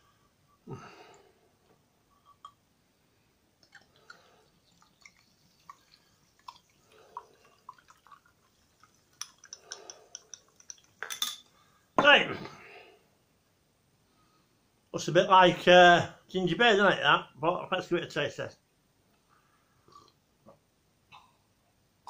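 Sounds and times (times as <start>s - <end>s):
fizzy soda pouring: 3.6s - 11.4s
glass bottle clinks and taps: 10.7s - 11.4s.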